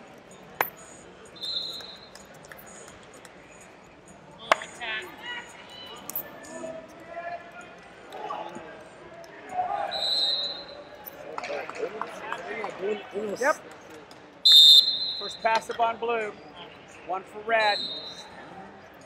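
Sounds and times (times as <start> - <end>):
referee's whistle blast: 1.4 - 2.1, 9.9 - 10.8, 14.4 - 15.6, 17.6 - 18.2
short whistle tone: 1.4 - 2.1, 9.9 - 10.9, 14.4 - 15.4.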